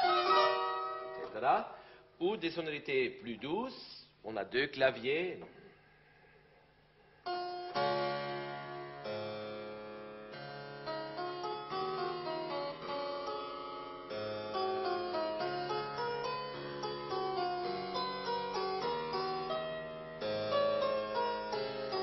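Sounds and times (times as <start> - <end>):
harpsichord playing: 0.0 - 1.3, 7.3 - 22.0.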